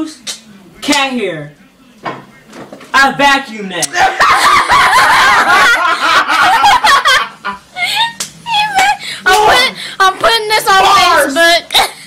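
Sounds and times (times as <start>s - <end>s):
people laughing loudly: 3.9s - 8.2s.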